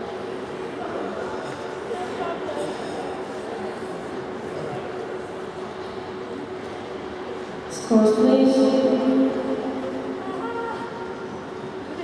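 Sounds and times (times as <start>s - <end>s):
arena hum and room noise: 0.0s - 12.0s.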